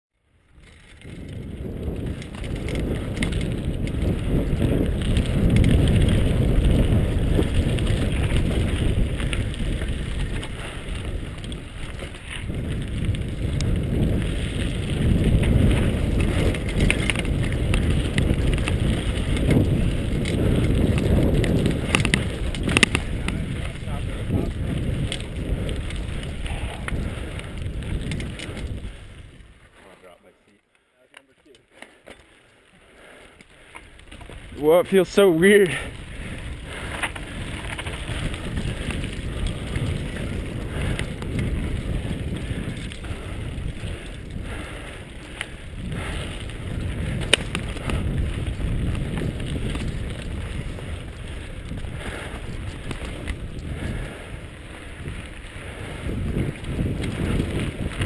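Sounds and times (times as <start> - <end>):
wind and tyre noise: 0.1 - 58.0
bike rattling: 0.2 - 58.0.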